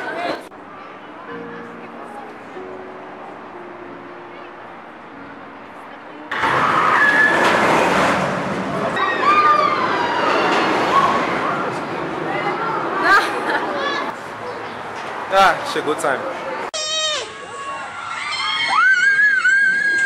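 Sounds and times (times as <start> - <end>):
faint music: 0.0 - 7.6
crowd screaming: 6.3 - 11.8, 16.8 - 20.0.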